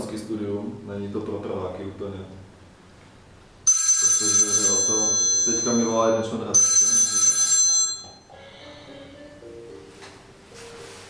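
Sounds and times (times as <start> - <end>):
phone ringing: 3.6 - 8.9
quiet music: 8.1 - 11.0.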